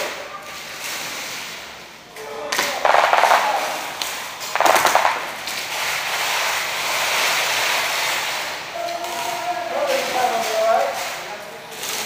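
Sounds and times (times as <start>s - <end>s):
distant gunfire: 2.7s - 3.8s, 4.5s - 5.5s
airsoft guns firing bursts: 2.7s - 8.4s.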